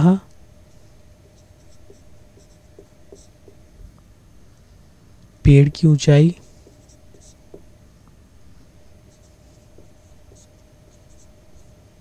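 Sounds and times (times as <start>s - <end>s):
marker writing on whiteboard: 0.6s - 3.7s, 6.4s - 7.8s, 8.8s - 12.0s.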